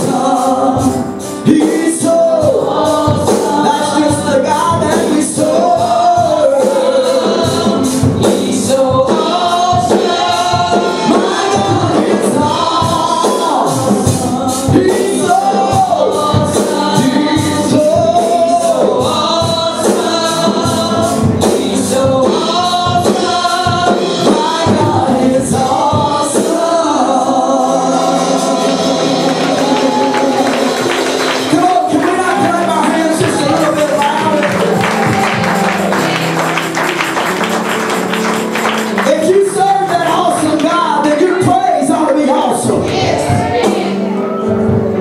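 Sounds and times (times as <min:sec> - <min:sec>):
singers with held sliding notes: 0:00.0 - 0:36.8, 0:42.1 - 0:45.0
instrumental accompaniment with beat: 0:00.0 - 0:45.0
keyboard chords: 0:00.0 - 0:45.0
tambourine and percussion beating: 0:28.6 - 0:40.9.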